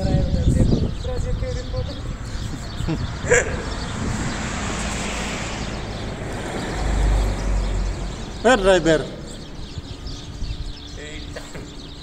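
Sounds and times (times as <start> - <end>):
roadside traffic: 0.0 - 12.0
vehicle approaching rumble: 1.2 - 12.0.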